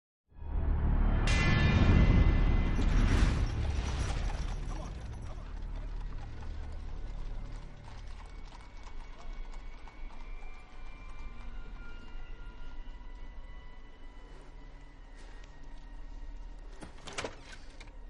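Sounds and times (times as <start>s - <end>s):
night street background: 0.4s - 18.0s.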